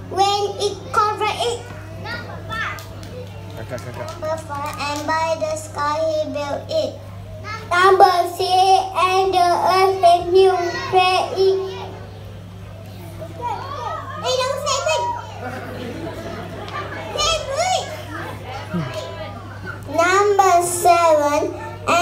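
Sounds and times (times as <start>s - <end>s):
children's voices overlapping: 0.0s - 22.0s
steady low hum: 0.0s - 22.0s.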